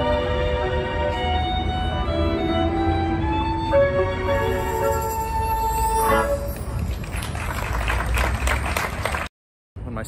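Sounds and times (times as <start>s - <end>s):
acoustic street band playing: 0.0s - 9.3s.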